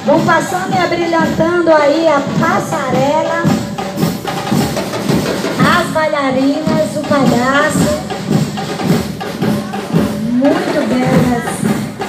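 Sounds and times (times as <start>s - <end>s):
commentator speaking: 0.0s - 3.6s, 5.6s - 8.1s, 9.6s - 11.7s
music with drums and percussion: 0.0s - 12.0s.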